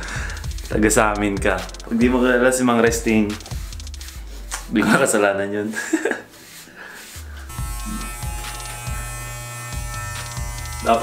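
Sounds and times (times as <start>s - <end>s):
background music with beat: 0.0s - 11.0s
electric hair clippers buzzing: 7.5s - 11.0s.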